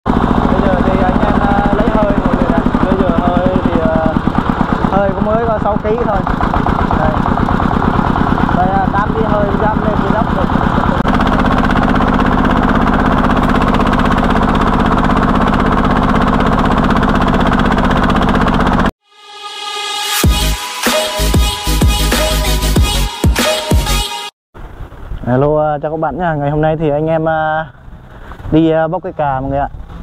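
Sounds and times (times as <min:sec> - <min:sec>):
diesel engine running under load: 0:00.1 - 0:18.9.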